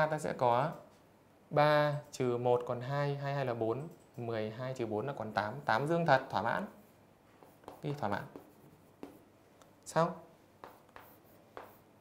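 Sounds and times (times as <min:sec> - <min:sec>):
chalk tapping and scraping on chalkboard: 0:06.8 - 0:09.7, 0:10.6 - 0:12.0.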